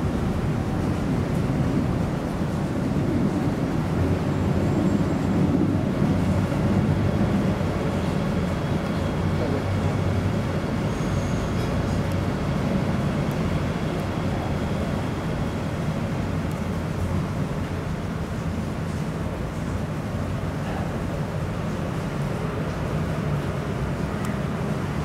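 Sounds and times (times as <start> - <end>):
water rushing: 0.0 - 25.0.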